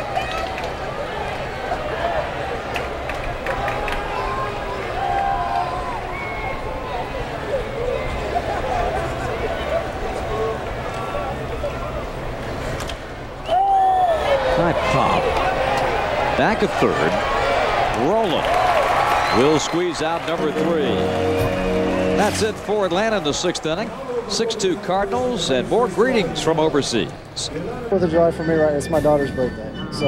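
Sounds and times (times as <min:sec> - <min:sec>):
crowd murmuring and chattering: 0:00.0 - 0:13.4, 0:14.0 - 0:30.0
shouts and whistles: 0:13.4 - 0:14.4.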